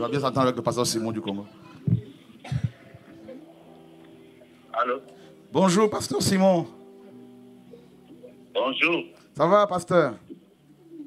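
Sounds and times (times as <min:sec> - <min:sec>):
person coughing: 0:02.4 - 0:02.8.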